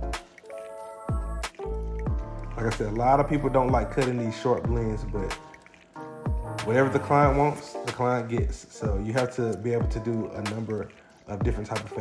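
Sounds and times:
synth music with steady beat: 0:00.0 - 0:12.0.

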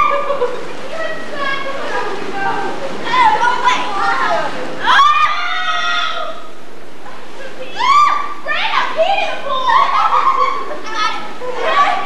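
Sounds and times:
girls shouting and squealing: 0:00.0 - 0:06.6, 0:07.4 - 0:12.0.

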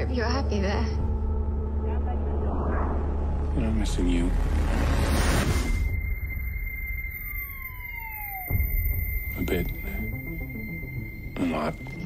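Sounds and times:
low rumble: 0:00.0 - 0:10.6
steady high electronic tone: 0:01.2 - 0:12.0
downward sliding siren-like tone: 0:01.7 - 0:11.3.

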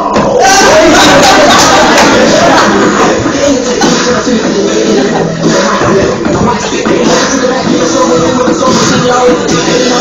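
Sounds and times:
loud hip-hop music: 0:00.0 - 0:10.0.

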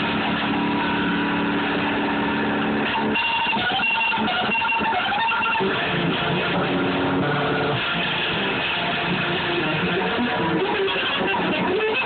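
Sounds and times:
guitar chord ringing: 0:00.0 - 0:12.0.

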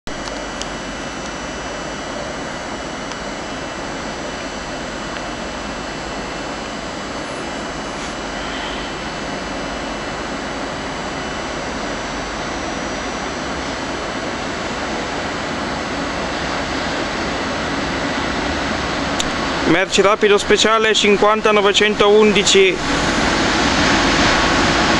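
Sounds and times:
freight train rumbling: 0:07.2 - 0:10.6.

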